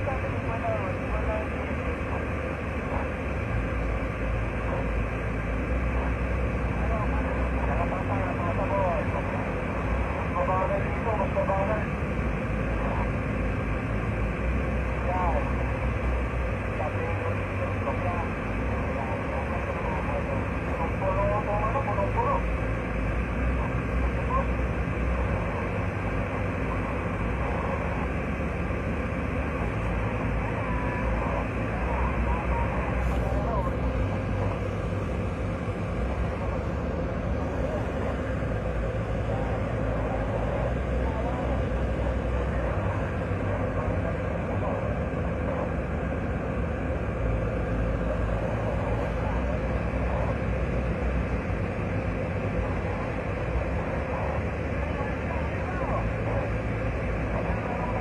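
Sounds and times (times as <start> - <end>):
faint voices or radio: 0.0 - 58.0
van engine and road rumble: 0.0 - 58.0.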